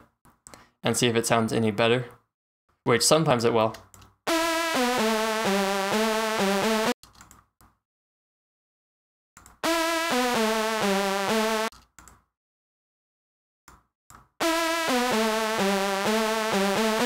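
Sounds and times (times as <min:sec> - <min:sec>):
crunchy synth phrase: 0:14.4 - 0:17.0.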